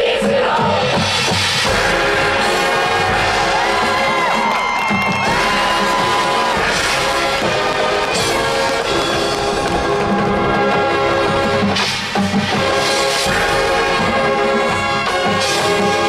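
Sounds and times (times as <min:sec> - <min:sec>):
marching band playing chords: 0:00.1 - 0:16.0
crowd cheering: 0:01.7 - 0:11.9.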